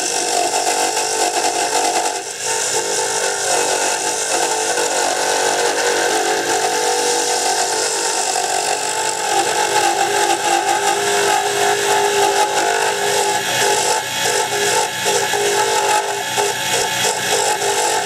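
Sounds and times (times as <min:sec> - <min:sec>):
lathe motor whine: 0:00.0 - 0:18.0
tool shaving spinning wood: 0:00.0 - 0:18.0.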